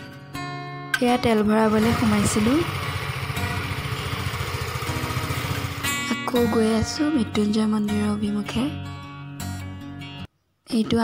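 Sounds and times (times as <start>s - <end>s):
guitar music: 0.0s - 10.3s
motorbike engine running: 1.2s - 6.9s.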